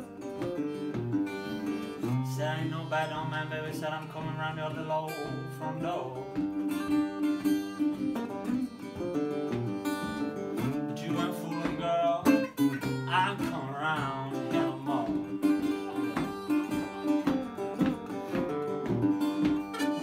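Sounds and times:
harmonica: 0.0 - 20.0
resonator guitar blues: 0.0 - 20.0.

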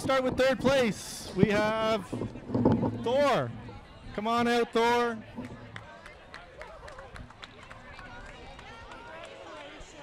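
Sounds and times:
scattered hand clapping: 5.3 - 10.0.

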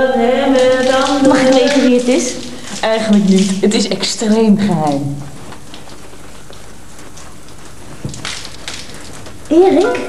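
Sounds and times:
shower spray running: 0.0 - 10.0
water splashing on tiled floor: 0.0 - 10.0.

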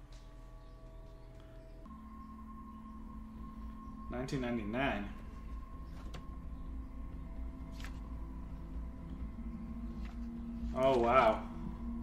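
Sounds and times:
low drone: 0.0 - 12.0
tense held-tone music: 0.0 - 12.0.

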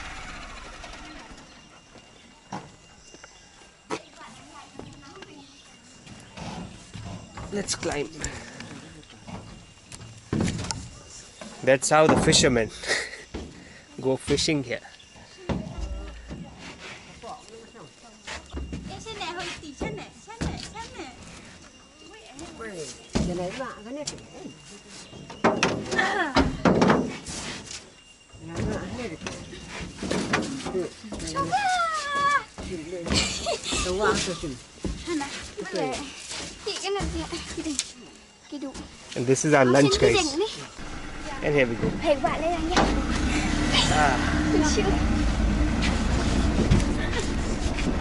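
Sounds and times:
people talking and laughing: 0.0 - 10.0, 10.7 - 26.8, 28.3 - 48.0.

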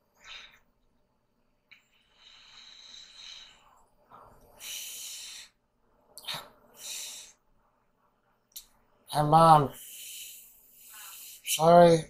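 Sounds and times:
air hissing through breathing tube: 1.9 - 3.8, 4.6 - 5.6.

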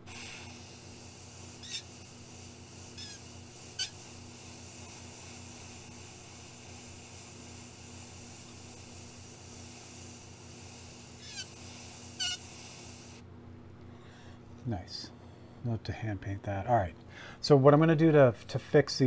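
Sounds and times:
airbrush spraying hiss: 0.0 - 13.2
low steady hum: 0.0 - 19.0.

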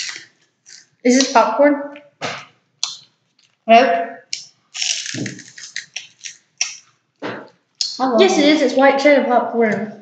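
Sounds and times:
crunching puffed snack: 0.0 - 1.0, 2.8 - 3.7, 4.3 - 7.0.

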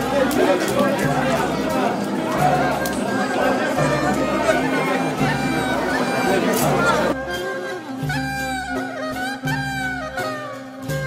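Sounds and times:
crowd talking: 0.0 - 11.0
music: 0.0 - 11.0.

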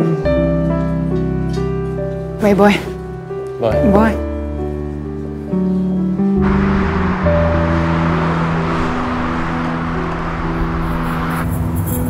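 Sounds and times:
low sustained soundtrack music: 0.0 - 12.0
road traffic rushing: 6.0 - 12.0.

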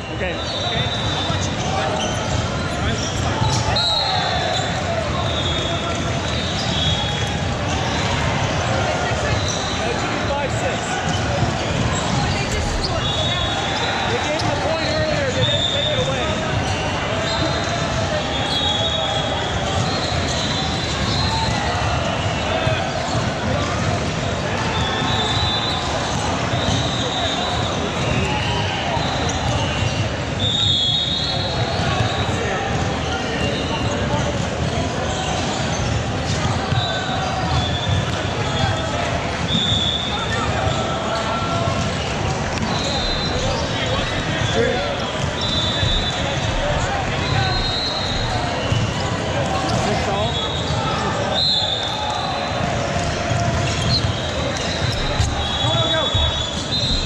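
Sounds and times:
players' voices echoing: 0.0 - 57.0
sneaker squeaks on court: 0.4 - 3.8, 11.1 - 15.9, 53.6 - 57.0.

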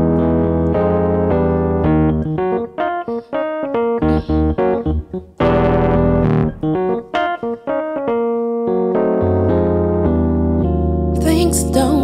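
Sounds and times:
electronic keyboard piano chords: 0.0 - 12.0.

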